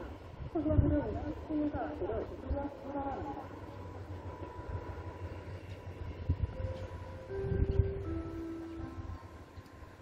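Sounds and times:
distant train rumbling: 0:00.0 - 0:10.0.

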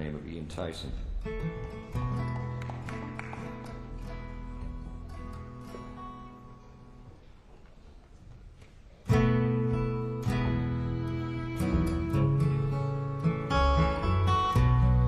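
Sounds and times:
acoustic guitar chords: 0:01.0 - 0:07.0, 0:09.1 - 0:15.0.

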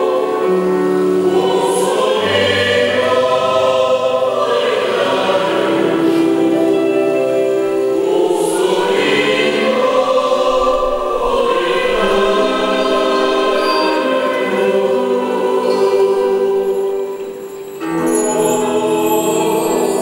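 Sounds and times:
choir singing a hymn: 0:00.0 - 0:20.0
keyboard: 0:00.0 - 0:20.0
acoustic guitar: 0:02.3 - 0:20.0.

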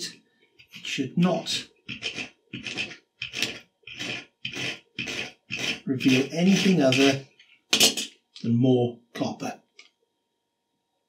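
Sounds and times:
knife scraping copper wire: 0:01.9 - 0:07.2.

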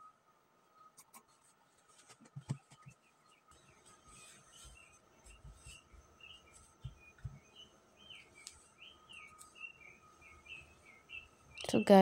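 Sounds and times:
bird chirping faintly: 0:02.5 - 0:12.0
soft thumps: 0:06.5 - 0:07.4.

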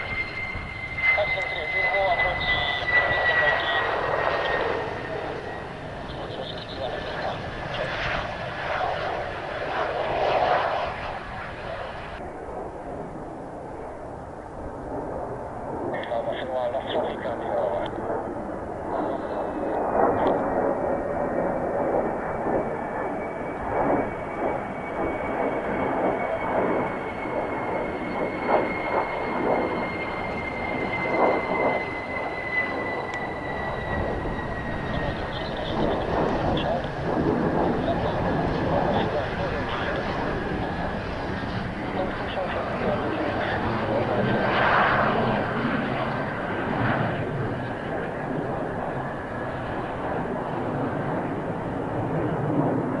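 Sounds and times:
jet engine roar with whine: 0:00.0 - 0:53.0.

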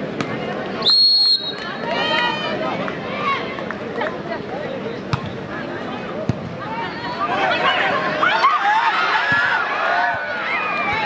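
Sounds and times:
crowd chatter: 0:00.0 - 0:11.0
volleyball hit thuds: 0:05.1 - 0:05.4, 0:06.2 - 0:06.6.

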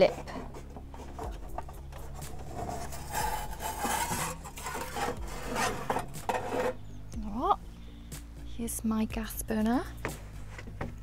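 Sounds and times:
metal squeaks: 0:00.0 - 0:06.9
metal tray scraping metal: 0:00.5 - 0:06.9.

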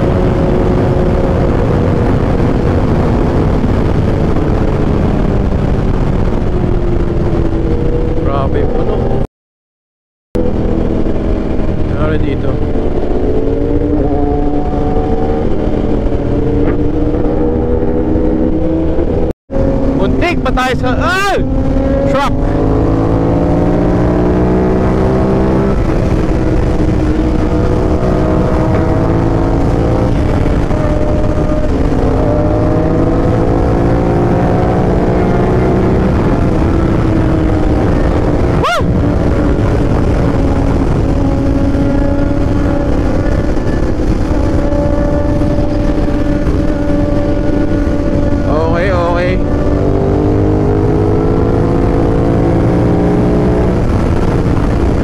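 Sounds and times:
motorcycle engine accelerating: 0:00.0 - 0:09.3, 0:10.4 - 0:55.0
wind noise: 0:00.0 - 0:09.3, 0:10.4 - 0:55.0.

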